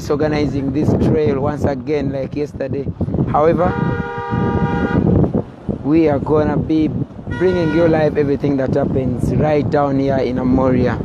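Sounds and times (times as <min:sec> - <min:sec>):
moving vehicle rumble: 0:00.0 - 0:11.0
vehicle horn: 0:03.5 - 0:05.2, 0:07.3 - 0:08.0.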